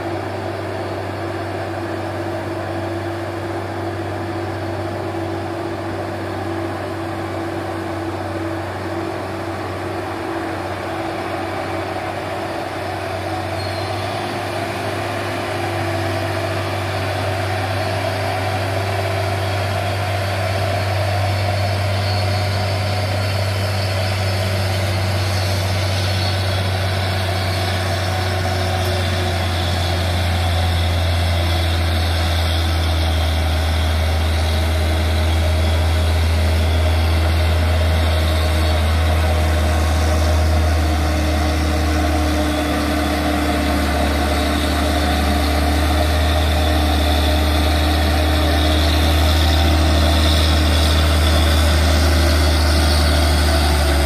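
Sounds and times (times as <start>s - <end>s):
diesel truck engine running: 0.0s - 54.0s.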